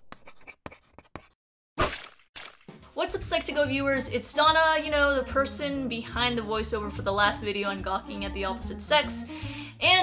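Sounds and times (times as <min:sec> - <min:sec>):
pencil scratching on paper: 0:00.0 - 0:01.4.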